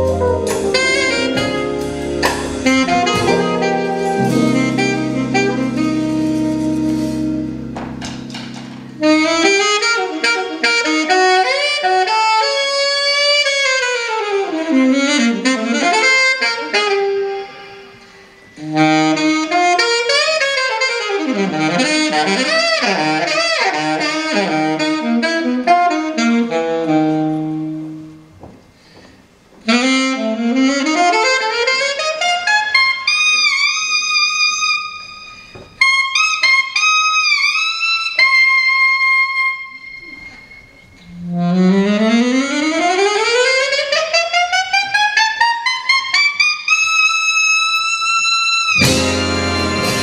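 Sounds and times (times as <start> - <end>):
alto saxophone playing: 0.0 - 28.4, 29.6 - 50.0.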